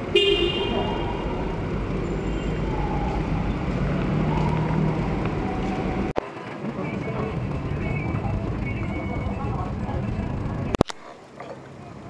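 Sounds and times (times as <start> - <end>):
car horn toot: 0.0 - 1.5
echoing engine noise: 0.0 - 12.0.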